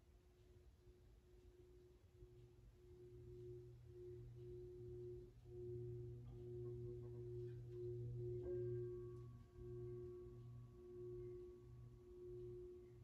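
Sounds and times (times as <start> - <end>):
singing bowl tone: 1.0 - 13.0.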